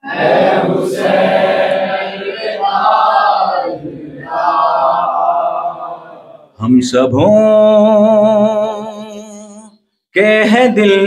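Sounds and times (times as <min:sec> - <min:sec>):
men chanting a lament: 0:00.0 - 0:08.8.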